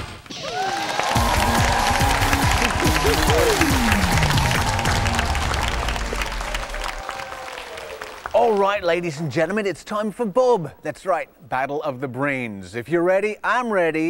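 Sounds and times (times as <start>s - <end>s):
children clapping and cheering: 0.2s - 8.8s
upbeat music: 1.0s - 6.3s.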